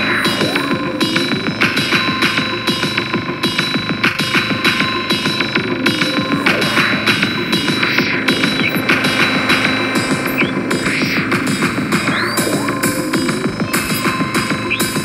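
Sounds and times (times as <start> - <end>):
drone-like synthesizer tones: 0.0 - 15.0
drum machine beat: 0.0 - 15.0.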